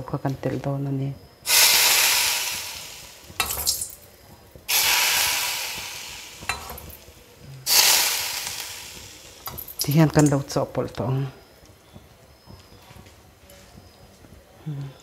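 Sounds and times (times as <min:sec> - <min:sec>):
hot oil sizzling on salad: 0:01.4 - 0:10.6.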